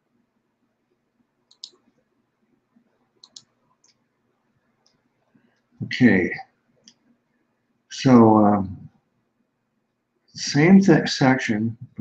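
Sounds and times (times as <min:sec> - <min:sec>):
faint computer mouse clicks: 0:01.5 - 0:01.8, 0:03.2 - 0:04.0.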